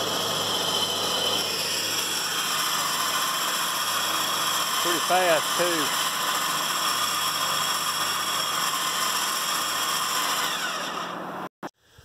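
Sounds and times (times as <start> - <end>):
electric winch whining: 0.0 - 11.5.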